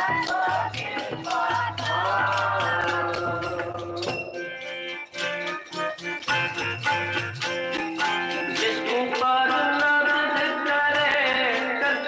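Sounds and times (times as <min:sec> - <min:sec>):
tabla strokes: 0:00.0 - 0:04.8
reedy harmonium chords: 0:02.3 - 0:11.9.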